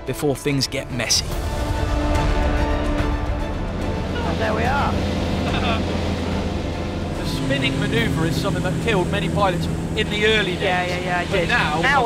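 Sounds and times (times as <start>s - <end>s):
aircraft engine and propeller droning: 1.0s - 12.0s.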